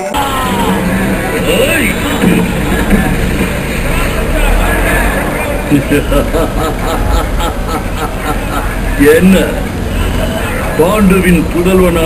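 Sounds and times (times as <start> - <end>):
indistinct voices: 0.0 - 12.0
low rumble: 0.1 - 8.9.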